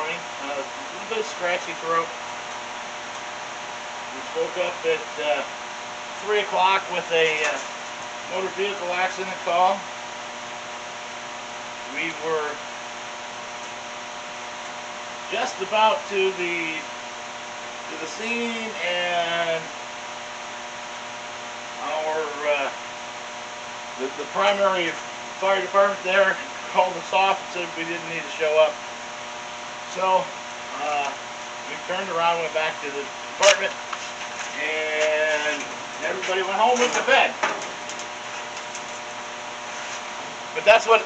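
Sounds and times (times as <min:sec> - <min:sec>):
electrical hum with hiss: 0:00.0 - 0:41.0.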